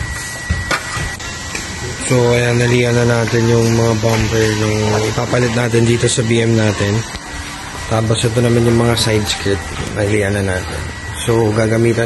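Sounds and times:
thin high tone: 0.0s - 12.0s.

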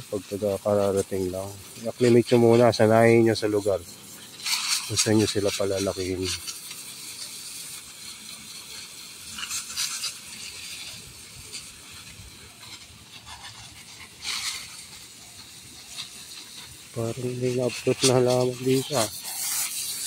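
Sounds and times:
hose spraying water: 0.0s - 20.0s.

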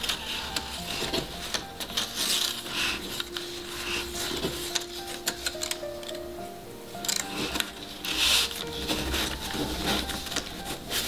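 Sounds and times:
paper edges ticking: 0.0s - 11.0s
paper strips rustling: 0.0s - 11.0s.

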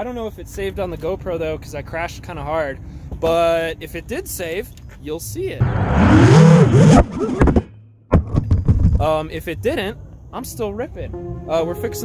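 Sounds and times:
rush of air: 5.6s - 7.6s
drone motors revving: 5.6s - 7.7s.

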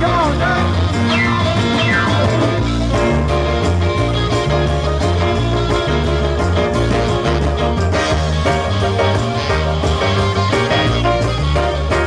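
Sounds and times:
bass guitar: 0.0s - 12.0s
percussion: 0.0s - 12.0s
electric guitar solo: 0.8s - 3.1s.

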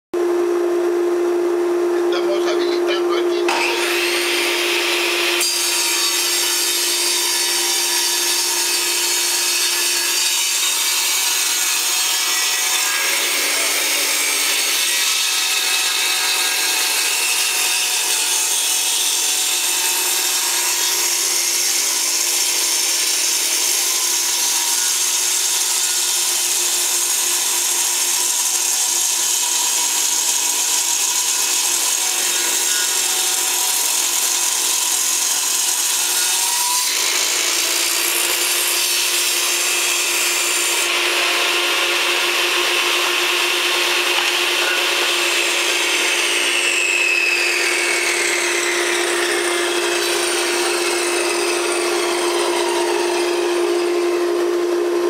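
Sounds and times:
table saw cutting wood: 2.0s - 55.0s.

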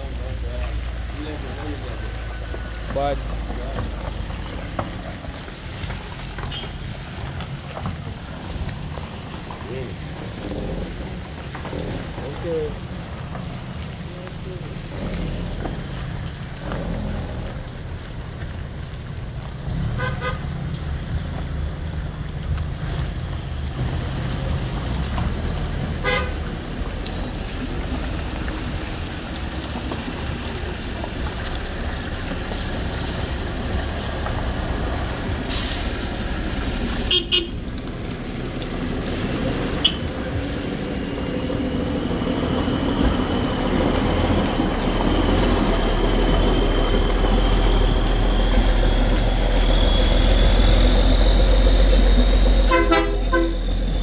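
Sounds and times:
car engines at low speed: 0.0s - 54.0s
tyres through water and gravel: 0.0s - 54.0s
vehicle low rumble: 0.0s - 54.0s
car horn toots: 26.0s - 26.3s, 37.1s - 37.6s, 39.8s - 40.1s, 52.7s - 53.6s.

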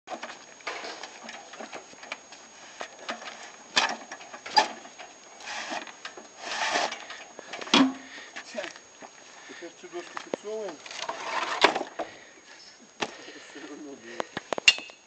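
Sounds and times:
pallet jack rattling and scraping: 0.1s - 2.2s, 2.8s - 8.0s, 10.8s - 12.1s.

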